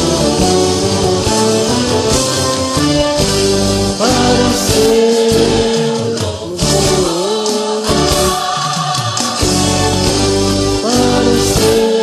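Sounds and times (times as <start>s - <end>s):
backing track with choir voices: 0.0s - 12.0s
man singing worship song: 3.8s - 10.0s, 10.6s - 12.0s.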